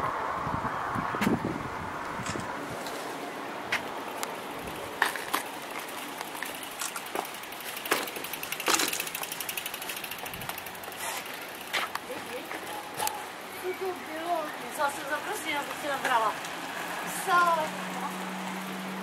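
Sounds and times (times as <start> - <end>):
bicycle tyres on paved road: 0.0 - 19.0
bike clicks and rattles: 2.1 - 3.0, 3.7 - 13.5.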